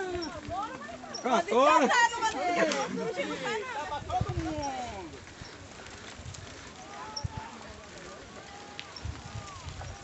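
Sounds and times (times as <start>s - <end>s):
bikes rumbling on dirt road: 0.0s - 10.0s
faint voices: 0.0s - 10.0s.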